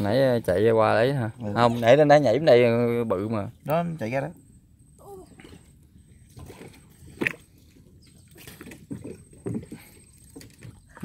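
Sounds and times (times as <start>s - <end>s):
water sloshing and splashing: 0.0s - 2.7s, 5.0s - 11.0s.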